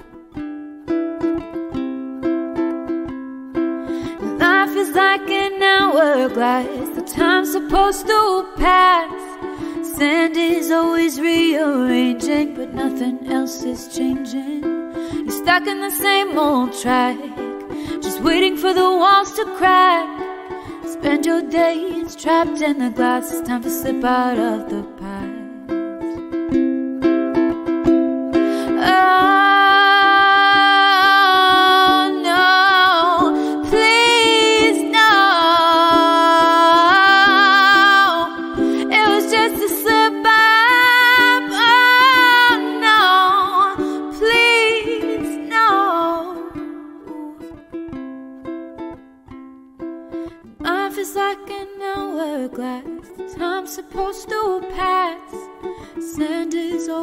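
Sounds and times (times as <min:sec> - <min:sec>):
strummed acoustic string instrument: 0:00.0 - 0:57.0
woman singing wordlessly: 0:04.1 - 0:25.8, 0:28.6 - 0:47.6, 0:50.5 - 0:57.0.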